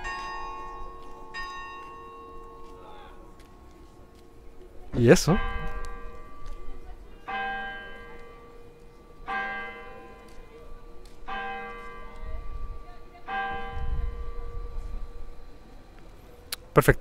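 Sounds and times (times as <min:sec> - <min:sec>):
church bell striking: 0:00.0 - 0:03.7, 0:04.8 - 0:15.6.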